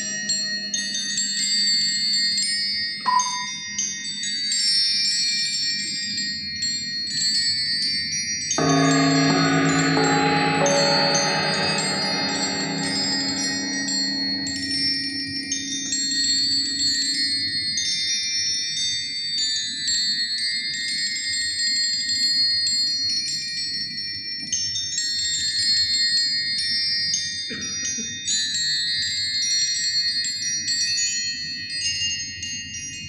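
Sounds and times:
lower sustained tones: 0:08.6 - 0:17.6
bell-like metal percussion notes: 0:08.6 - 0:17.7.

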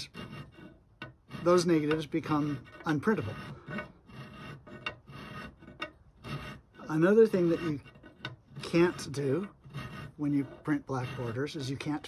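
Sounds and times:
file rasping on metal: 0:00.0 - 0:12.0.

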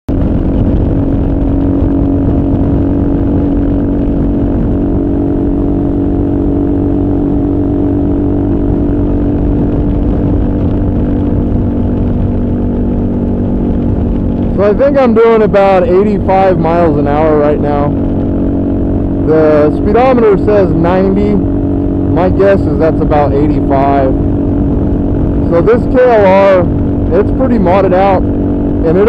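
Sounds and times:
motorcycle engine cruising: 0:00.1 - 0:29.0
wind rush: 0:00.1 - 0:29.0.

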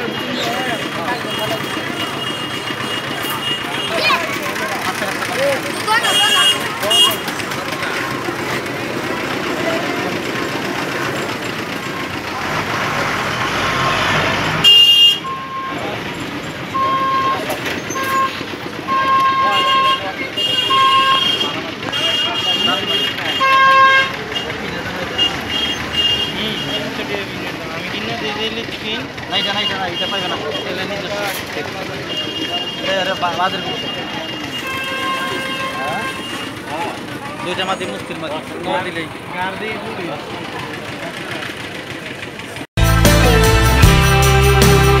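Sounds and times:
vehicle horn honking: 0:00.0 - 0:04.6, 0:05.5 - 0:09.1, 0:13.2 - 0:16.1, 0:16.7 - 0:27.2, 0:29.3 - 0:31.0, 0:31.9 - 0:36.8
market crowd chatter: 0:00.0 - 0:43.5.

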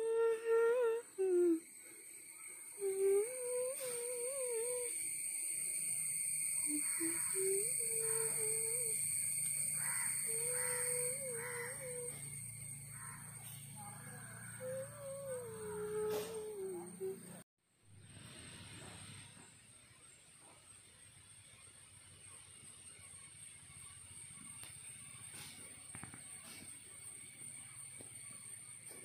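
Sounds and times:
person humming: 0:00.0 - 0:01.7, 0:02.8 - 0:05.0, 0:06.6 - 0:09.0, 0:09.8 - 0:12.3, 0:13.8 - 0:17.4
high-pitched background whine: 0:00.0 - 0:17.4.

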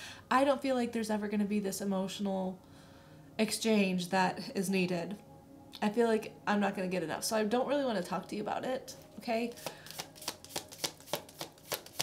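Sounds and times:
cards being shuffled: 0:09.5 - 0:12.0.

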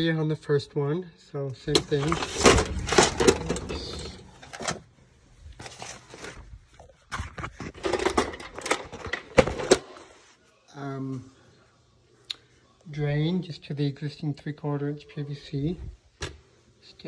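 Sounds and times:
paper rustling and crinkling: 0:01.7 - 0:10.4.

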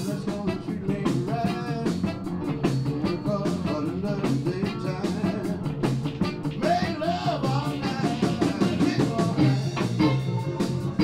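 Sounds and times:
blues band playing live: 0:00.0 - 0:11.0.

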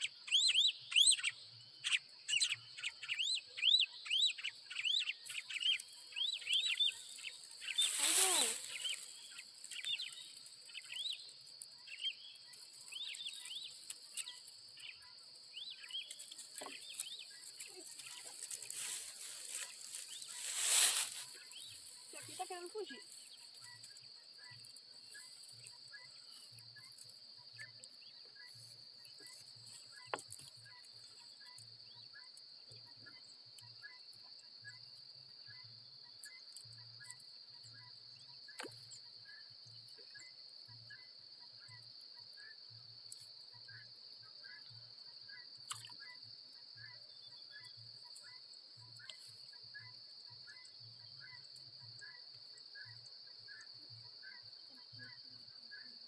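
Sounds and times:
high-pitched insect chorus: 0:00.0 - 0:56.0
short insect chirps: 0:00.0 - 0:56.0.

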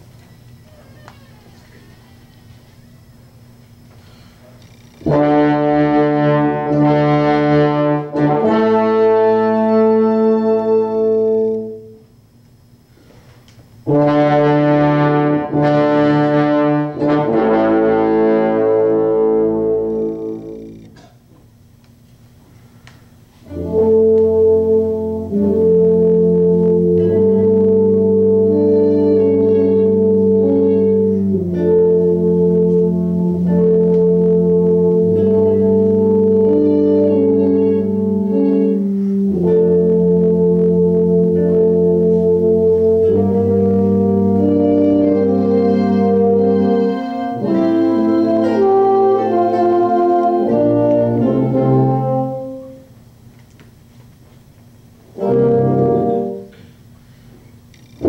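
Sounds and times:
brass band playing chords: 0:05.0 - 0:12.0, 0:13.8 - 0:20.6, 0:23.4 - 0:53.0, 0:55.1 - 0:56.8.

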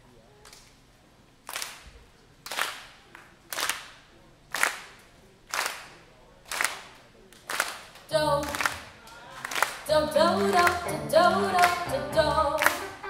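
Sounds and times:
audience clapping in time: 0:01.4 - 0:10.9, 0:11.5 - 0:11.9, 0:12.6 - 0:13.0.

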